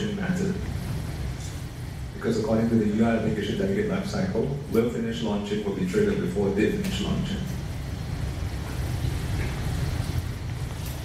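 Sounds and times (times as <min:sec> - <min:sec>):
low room rumble with hiss: 0:00.0 - 0:11.0.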